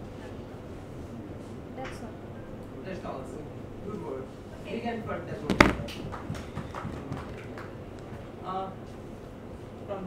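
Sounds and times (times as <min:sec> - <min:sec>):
taps and knocks on tabletop: 0:05.5 - 0:06.0.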